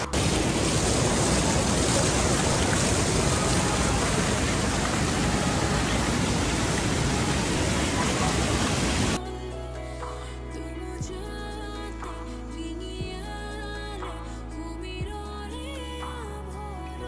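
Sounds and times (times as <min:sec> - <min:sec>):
water rushing over weir: 0:00.0 - 0:09.2.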